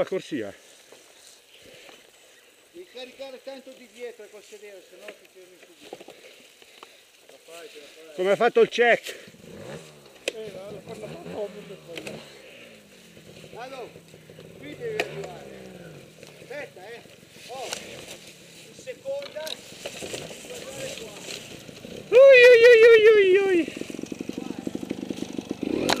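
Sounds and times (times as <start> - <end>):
person yelling: 22.1 - 23.7.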